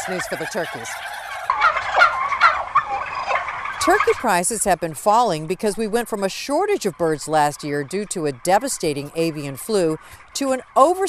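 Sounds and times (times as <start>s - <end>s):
turkeys gobbling: 0.0s - 11.0s.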